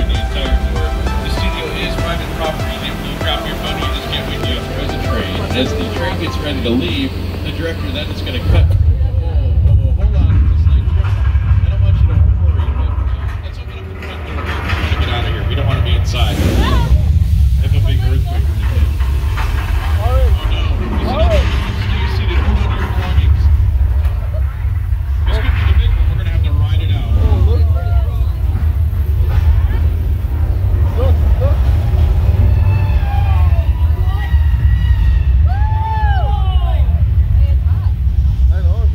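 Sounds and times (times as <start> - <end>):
deep earthquake rumble: 0.0 - 38.9
voices and shouts: 26.9 - 28.9, 30.8 - 37.8.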